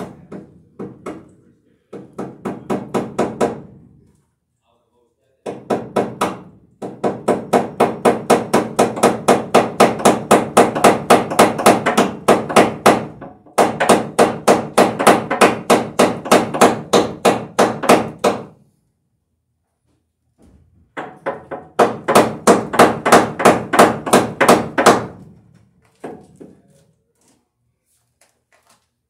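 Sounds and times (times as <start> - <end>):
hammer striking wooden joists: 0.0 - 1.3, 1.9 - 3.8, 5.4 - 18.6, 20.4 - 26.7.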